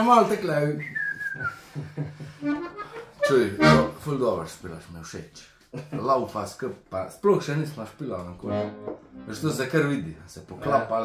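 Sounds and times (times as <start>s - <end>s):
man talking and laughing: 1.4s - 4.0s, 5.3s - 6.8s
button accordion notes: 2.4s - 4.0s, 8.4s - 9.6s.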